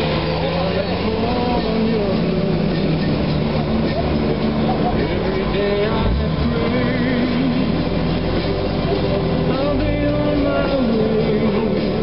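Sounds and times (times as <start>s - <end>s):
engine running at low speed: 0.0s - 12.0s
person singing: 0.0s - 12.0s.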